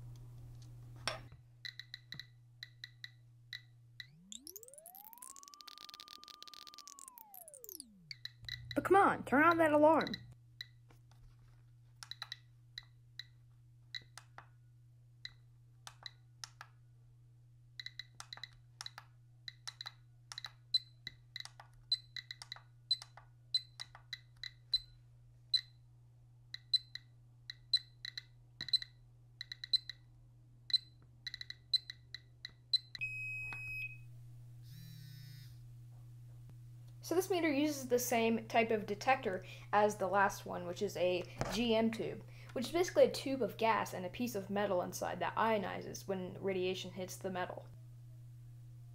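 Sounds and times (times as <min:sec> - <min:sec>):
geiger counter clicks: 0:01.6 - 0:10.8, 0:12.0 - 0:14.5, 0:17.8 - 0:24.9, 0:26.5 - 0:30.0, 0:30.7 - 0:33.0.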